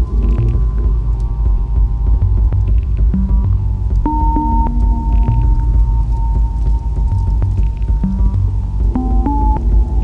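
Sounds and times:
synthesizer low drone: 0:00.0 - 0:10.0.

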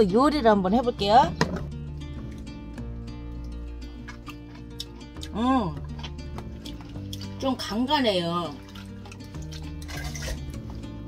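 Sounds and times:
soft background music: 0:00.0 - 0:11.0
brine dripping and splashing: 0:02.0 - 0:11.0.

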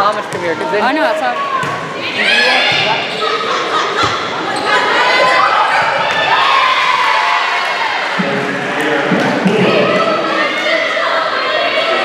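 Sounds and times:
people shouting and cheering: 0:00.6 - 0:12.0.

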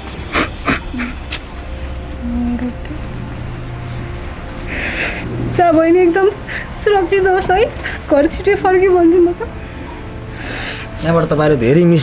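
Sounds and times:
woman sobbing and sniffing: 0:00.2 - 0:01.4.

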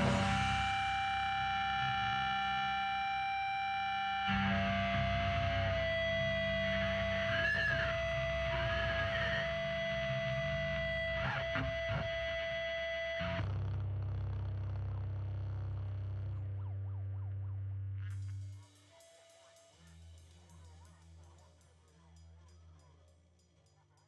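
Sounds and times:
distorted electric guitar chords: 0:00.0 - 0:18.0
low amplifier hum: 0:00.0 - 0:18.6.

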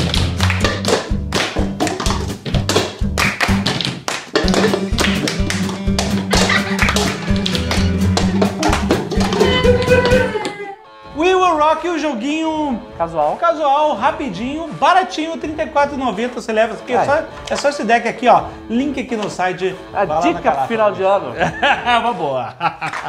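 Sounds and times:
music playing: 0:00.0 - 0:23.0
plastic cups banged on table: 0:00.1 - 0:10.3.

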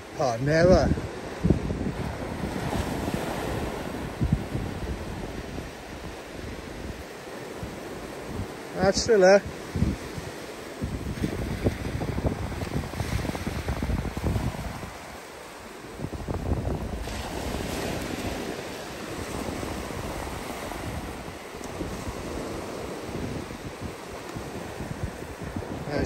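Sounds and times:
surf breaking on beach: 0:00.0 - 0:26.0
wind buffeting microphone: 0:00.0 - 0:26.0.

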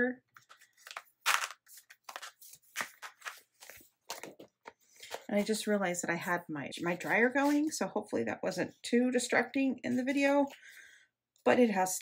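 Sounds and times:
paper rustling and crinkling: 0:00.3 - 0:05.4.

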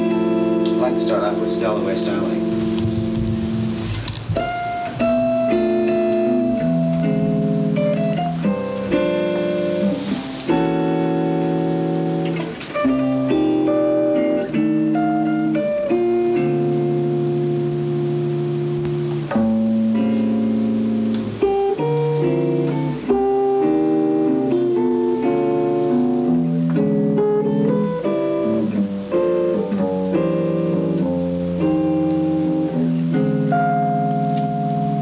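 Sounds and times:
jazz guitar: 0:00.0 - 0:35.0.

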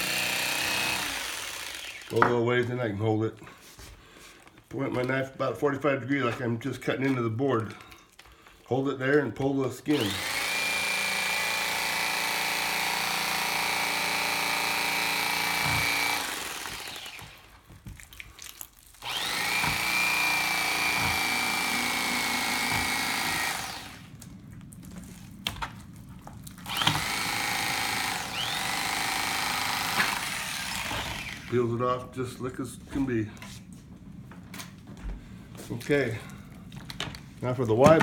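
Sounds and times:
electric fillet knife whining: 0:00.0 - 0:02.3, 0:09.9 - 0:17.6, 0:19.0 - 0:24.2, 0:26.6 - 0:31.6.

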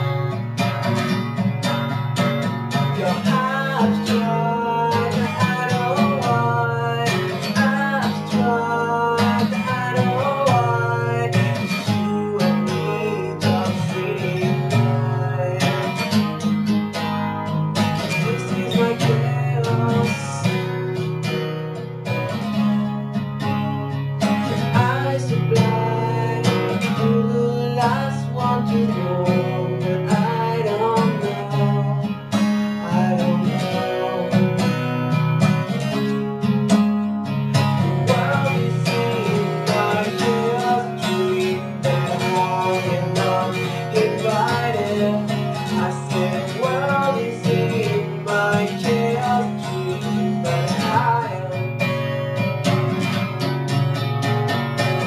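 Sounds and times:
acoustic guitar strumming: 0:00.0 - 0:55.0.

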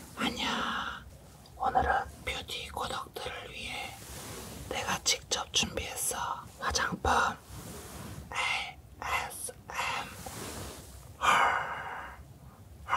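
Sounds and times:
person whispering close to microphone: 0:00.1 - 0:04.0, 0:04.7 - 0:07.4, 0:08.3 - 0:10.2.

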